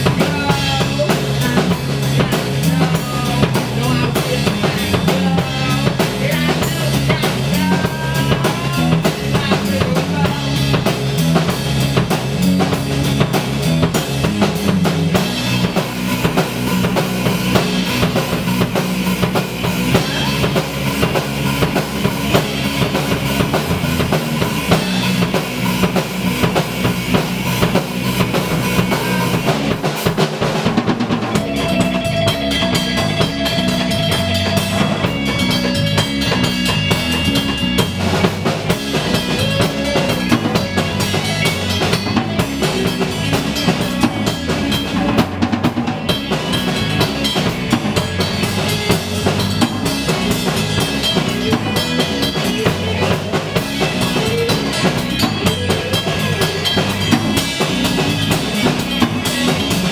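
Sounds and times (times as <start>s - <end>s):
drum kit beat: 0.0s - 59.9s
electric guitar: 0.0s - 59.9s.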